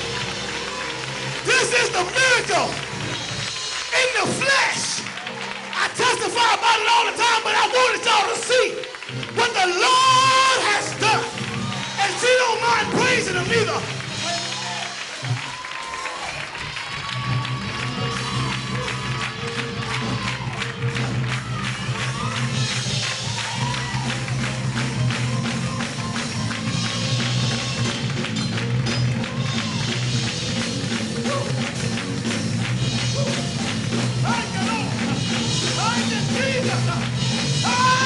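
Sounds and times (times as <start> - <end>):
church band playing: 0.0 - 38.0
congregation clapping: 0.0 - 38.0
drum and tambourine rhythm: 0.0 - 38.0
congregation calling out: 0.6 - 2.9
bass line: 16.6 - 38.0.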